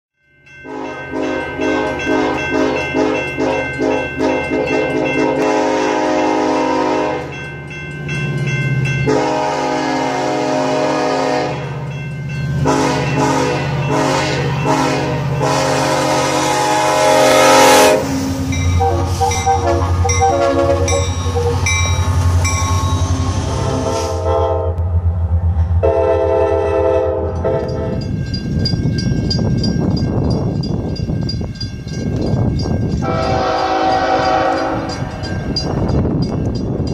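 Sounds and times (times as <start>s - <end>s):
locomotive air horn blasts: 0.7s - 7.3s, 9.0s - 11.8s, 12.6s - 24.8s, 25.8s - 28.0s, 33.0s - 35.2s.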